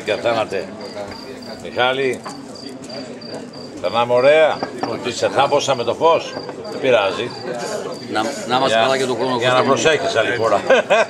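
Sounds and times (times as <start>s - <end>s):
crickets chirping: 0.0s - 11.0s
men talking: 0.0s - 11.0s.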